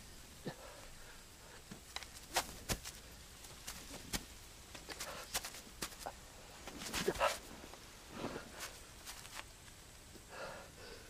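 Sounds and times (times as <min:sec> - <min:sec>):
pained breathing: 0:10.2 - 0:11.0.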